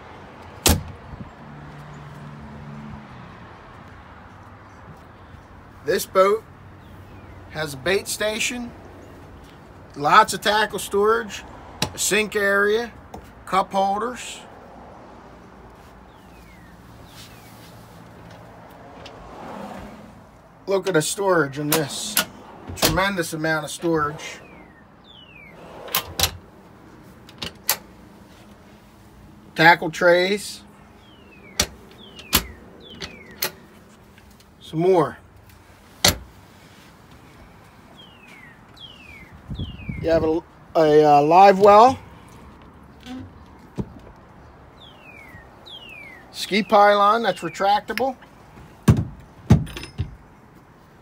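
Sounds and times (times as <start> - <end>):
hatch door squeaking: 21.6 - 26.4, 31.3 - 33.6, 43.0 - 43.4
sharp knocks: 48.8 - 50.2.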